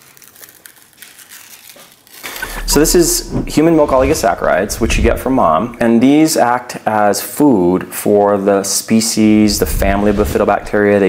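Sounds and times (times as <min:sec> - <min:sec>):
foil seal crinkling: 0:00.0 - 0:02.4.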